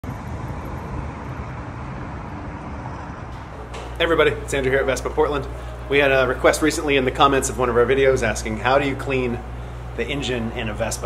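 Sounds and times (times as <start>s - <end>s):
city traffic noise: 0.0s - 11.0s.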